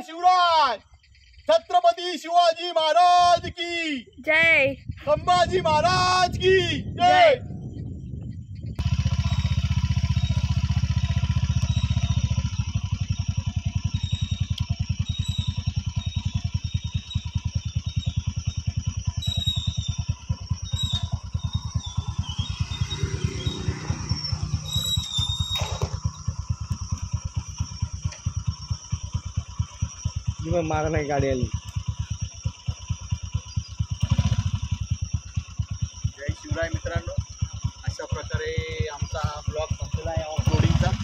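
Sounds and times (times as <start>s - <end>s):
motorcycle engine running: 3.0s - 41.0s.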